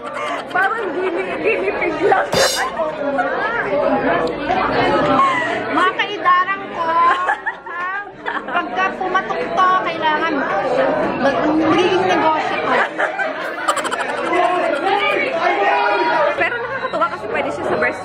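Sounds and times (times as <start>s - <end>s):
people talking excitedly: 0.0s - 18.0s.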